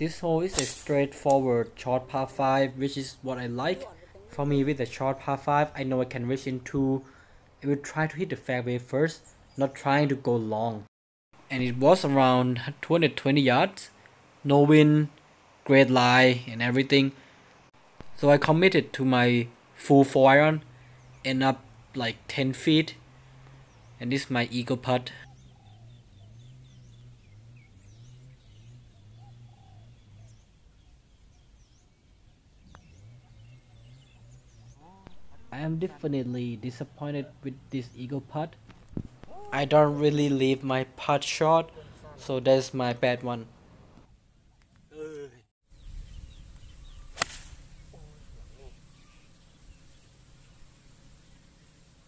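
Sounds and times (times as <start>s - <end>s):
golf club striking ball: 0.5s - 1.5s, 47.1s - 47.8s
birds calling and chirping: 20.7s - 42.4s, 45.7s - 51.7s
putter striking golf ball: 47.2s - 47.8s.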